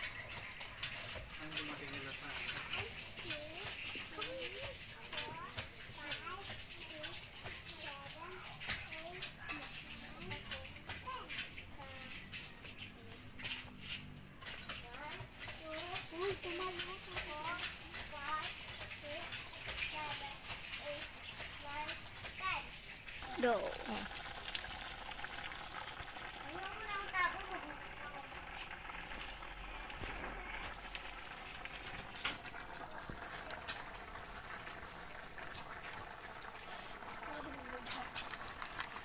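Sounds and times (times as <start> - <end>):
children talking: 0.0 - 13.4, 14.5 - 24.1, 26.1 - 29.0, 32.5 - 33.6, 34.4 - 38.4.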